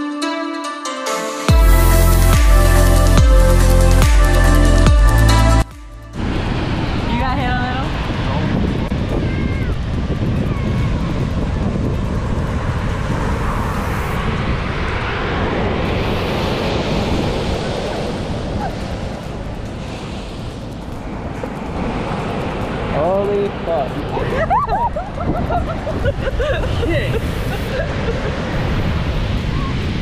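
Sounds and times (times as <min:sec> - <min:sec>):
ocean surf washing over sand: 0:06.1 - 0:30.0.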